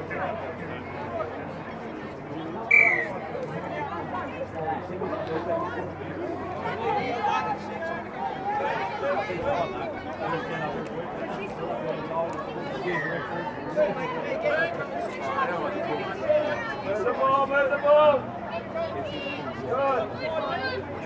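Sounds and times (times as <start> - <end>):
voices calling and chattering: 0.0 - 21.0.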